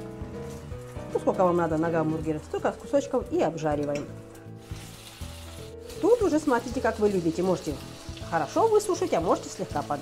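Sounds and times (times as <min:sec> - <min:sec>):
quiet background music: 0:00.0 - 0:10.0
meat sizzling in a pan: 0:04.4 - 0:10.0.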